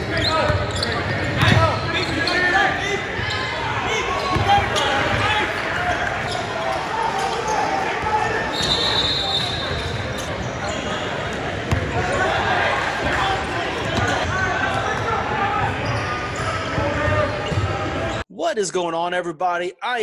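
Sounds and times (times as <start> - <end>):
basketball bouncing on court: 0.4 - 2.1, 4.2 - 5.3, 11.6 - 12.1.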